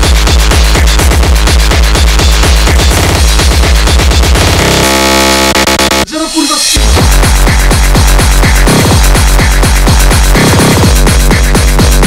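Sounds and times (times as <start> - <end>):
distorted kick drums: 0.0 - 12.0
harsh distorted synth tone: 0.0 - 12.0.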